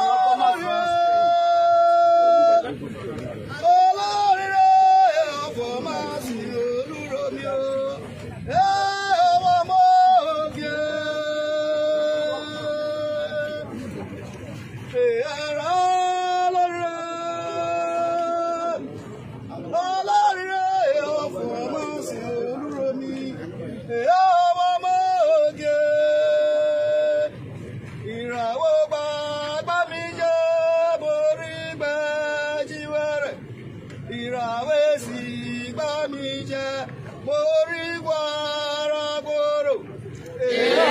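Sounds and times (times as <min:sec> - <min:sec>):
faint background noise: 0:00.0 - 0:40.9.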